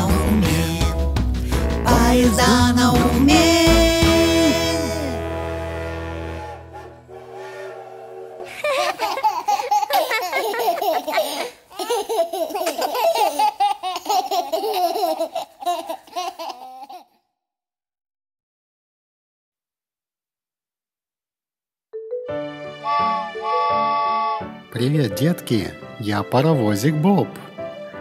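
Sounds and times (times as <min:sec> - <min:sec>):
children's song held chord: 0:01.8 - 0:09.5, 0:22.2 - 0:25.7
children and baby giggling: 0:08.5 - 0:17.2.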